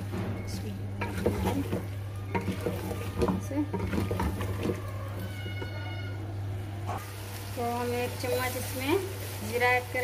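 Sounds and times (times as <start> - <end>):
spatula scraping metal pot: 1.0 - 4.9.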